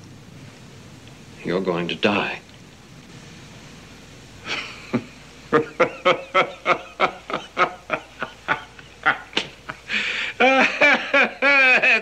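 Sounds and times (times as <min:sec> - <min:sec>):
man laughing: 0:04.4 - 0:12.0.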